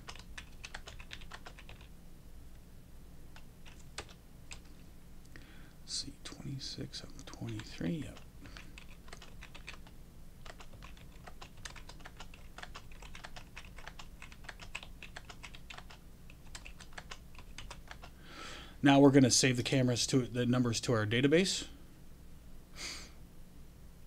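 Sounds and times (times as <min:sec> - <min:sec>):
keyboard typing clicks: 0:00.0 - 0:01.9, 0:03.4 - 0:04.7, 0:07.2 - 0:18.2.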